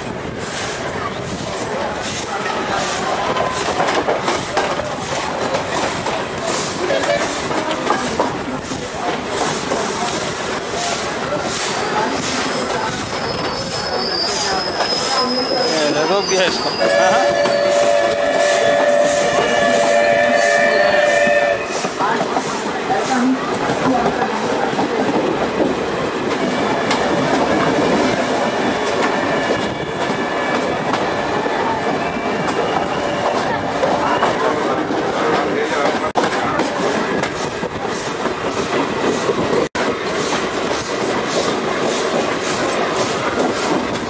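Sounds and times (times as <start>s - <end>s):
train rolling and wheel clatter: 0.0s - 44.0s
high wheel squeal: 13.1s - 21.9s
two-tone train horn blast: 16.8s - 21.8s.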